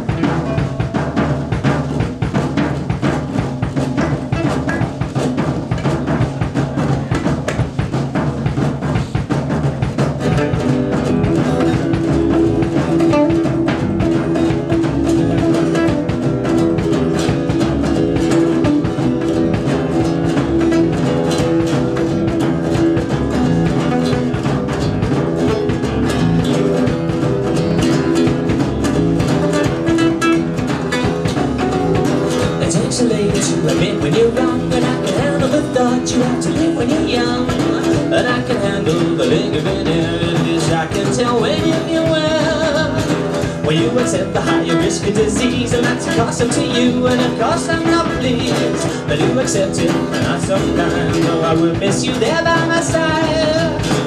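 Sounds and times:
drum kit steady beat: 0:00.0 - 0:54.0
strummed acoustic guitars: 0:00.0 - 0:54.0
upright bass: 0:00.0 - 0:54.0.

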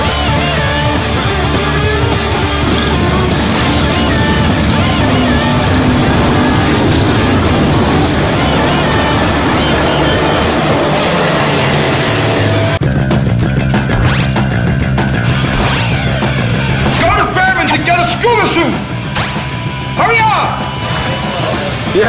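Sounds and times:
motorcycle engine running: 0:00.0 - 0:18.0
rock music: 0:00.0 - 0:22.0.

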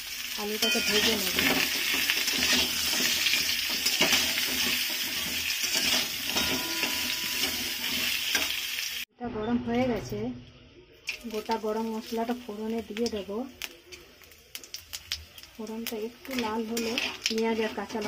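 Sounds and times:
potatoes sizzling in hot oil: 0:00.0 - 0:09.1, 0:11.1 - 0:18.0
metal spatula scraping pan: 0:00.6 - 0:08.6, 0:16.3 - 0:18.0.

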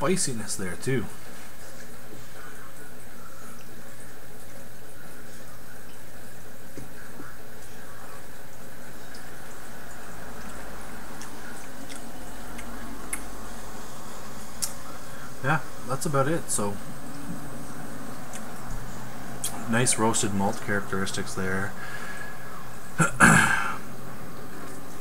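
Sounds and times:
background hiss: 0:00.0 - 0:25.0.

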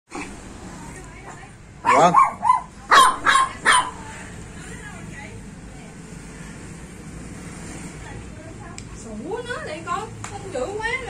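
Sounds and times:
faint background murmur: 0:00.1 - 0:11.0
dog barking: 0:01.8 - 0:04.1.

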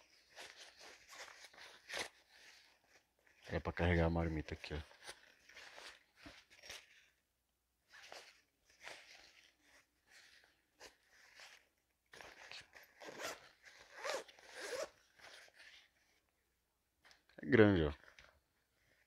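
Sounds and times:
fabric rustling: 0:00.0 - 0:07.2, 0:07.8 - 0:17.3
zipper pulls: 0:07.9 - 0:16.0.

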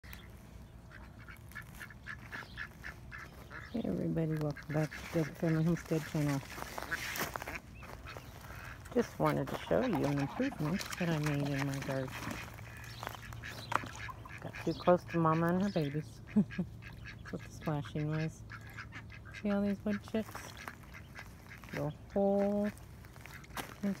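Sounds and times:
birds splashing in water: 0:00.0 - 0:24.0
duck quacking: 0:00.8 - 0:24.0.

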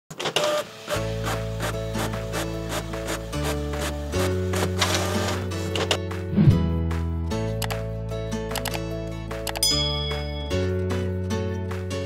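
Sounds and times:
intro music with steady beat: 0:06.1 - 0:08.2.

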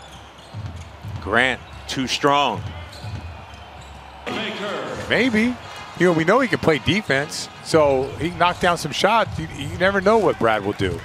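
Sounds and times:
basketball court ambience: 0:00.0 - 0:11.0
man talking: 0:04.3 - 0:11.0.

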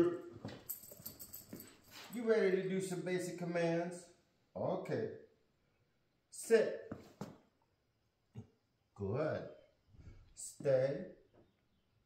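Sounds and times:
man's footsteps: 0:00.3 - 0:02.2, 0:06.9 - 0:07.5
puppy paws tapping on concrete: 0:00.3 - 0:02.3.

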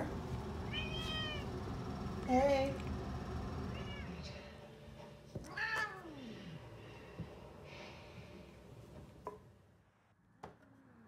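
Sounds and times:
cat meowing: 0:00.7 - 0:01.5, 0:03.8 - 0:04.2.

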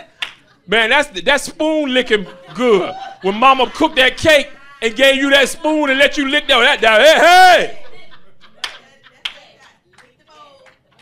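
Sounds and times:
sharp handclaps: 0:00.2 - 0:00.4, 0:08.6 - 0:11.0
man calling: 0:00.7 - 0:07.9.

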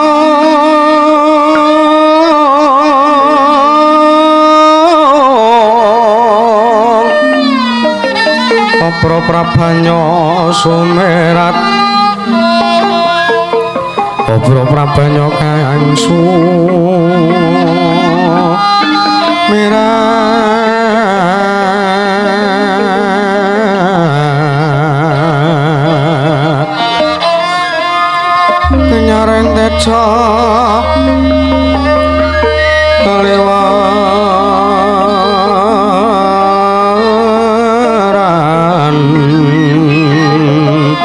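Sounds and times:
person singing long wavering notes: 0:00.0 - 0:41.0
faint accompanying line: 0:06.0 - 0:21.0, 0:25.2 - 0:41.0
gamelan music: 0:07.0 - 0:20.3, 0:26.6 - 0:36.2.

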